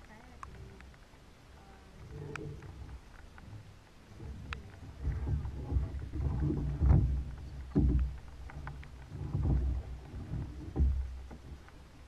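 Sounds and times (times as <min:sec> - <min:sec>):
kayak paddle strokes in water: 0:00.0 - 0:12.0
water dripping from paddle: 0:00.0 - 0:12.0.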